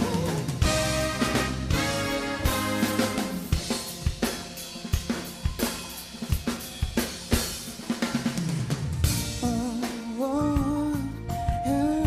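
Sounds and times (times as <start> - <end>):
bass guitar: 0.0 - 5.1, 9.0 - 12.0
drum kit playing funk groove: 0.0 - 12.0.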